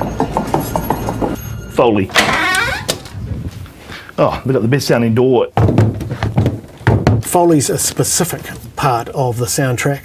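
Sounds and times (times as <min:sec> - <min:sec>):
door hinges creaking: 0:02.1 - 0:03.2.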